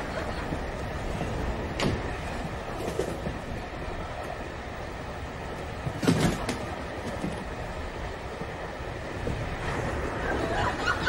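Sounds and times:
railway carriage rumble: 0.0 - 11.0.

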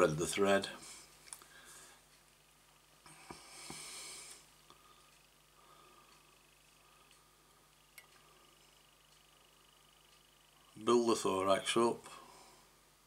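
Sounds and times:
low steady hum: 0.0 - 13.0
soft hiss: 0.0 - 13.0.

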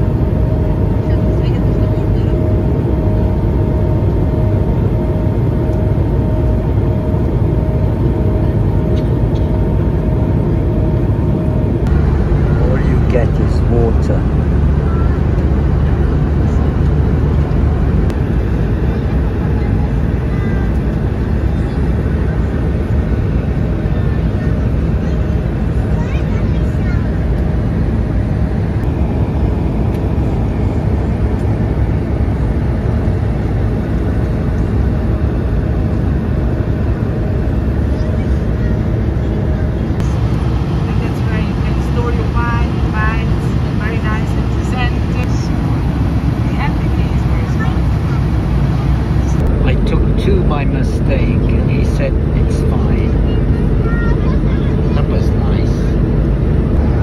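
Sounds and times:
airplane cabin engine rush: 0.0 - 57.0.

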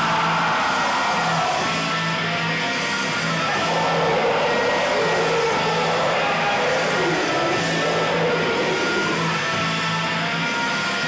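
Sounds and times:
distorted electric guitar: 0.0 - 11.0
live rock band: 0.0 - 11.0.

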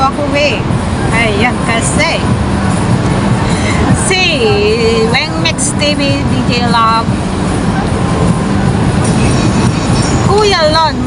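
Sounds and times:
city traffic rumble: 0.0 - 11.0.

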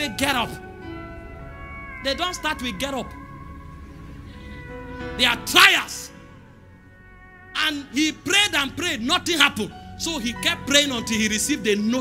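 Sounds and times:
soft church keyboard chords: 0.0 - 12.0.

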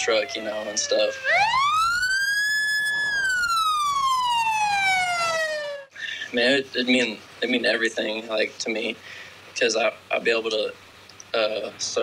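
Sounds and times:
fire engine siren wailing: 0.0 - 5.9.

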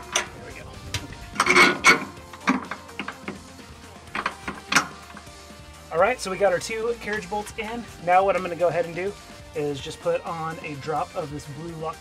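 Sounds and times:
metallic clinks and rattles: 0.0 - 5.4
quiet background music: 0.0 - 12.0.

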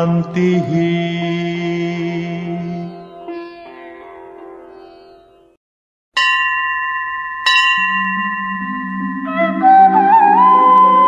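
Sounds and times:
bell ringing: 6.2 - 10.0.

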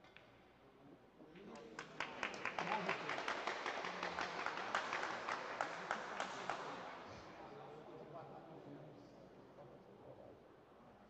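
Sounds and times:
audience applauding: 1.8 - 6.9.

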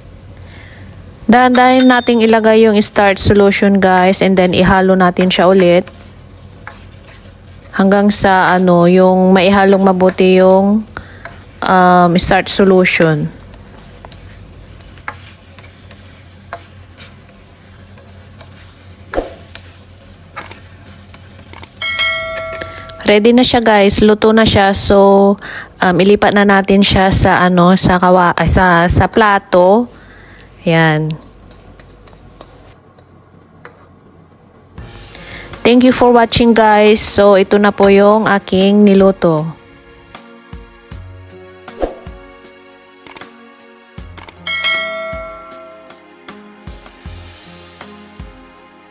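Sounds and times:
soft background music: 1.3 - 29.9, 34.2 - 48.9
spatula scraping a metal wok: 5.4 - 8.7, 13.5 - 21.4, 31.2 - 33.1
short clicks: 43.0 - 43.3
bell-like chime: 44.5 - 45.9.

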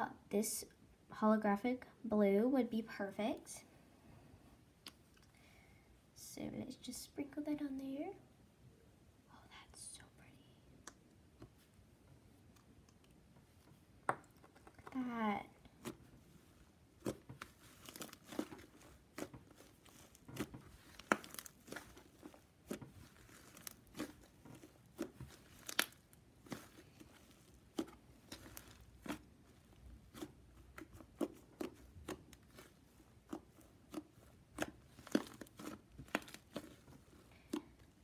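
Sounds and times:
slime crackling pops and clicks: 25.0 - 26.0.

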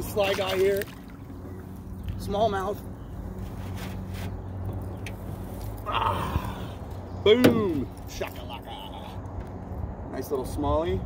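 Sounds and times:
fish splashing in water: 0.0 - 1.4.

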